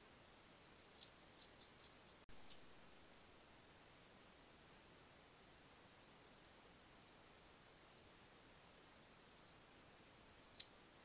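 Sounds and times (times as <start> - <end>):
faint steady hiss: 0.0 - 11.0
hedgehog crunching dry biscuit: 0.8 - 2.6.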